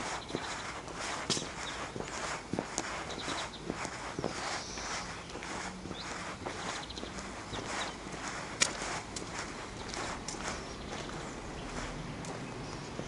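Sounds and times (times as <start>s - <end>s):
footsteps on cobblestones: 0.0s - 13.0s.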